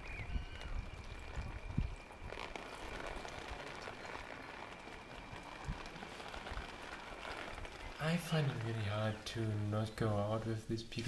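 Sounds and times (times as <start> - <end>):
water dripping and trickling: 0.0 - 11.0.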